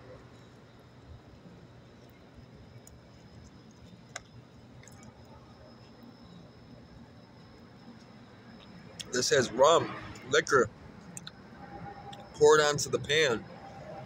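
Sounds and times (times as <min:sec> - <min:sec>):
faint chewing: 0:02.8 - 0:05.2.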